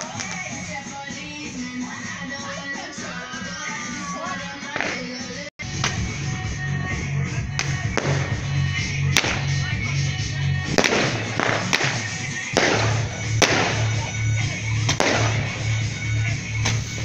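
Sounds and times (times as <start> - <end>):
fireworks bangs and crackling: 0.0 - 1.6, 4.6 - 17.0
music with pulsing bass beat: 0.0 - 17.0.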